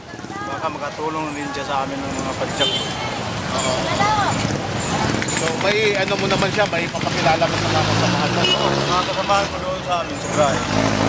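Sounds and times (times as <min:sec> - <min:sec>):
passing motor vehicles: 0:00.0 - 0:11.0.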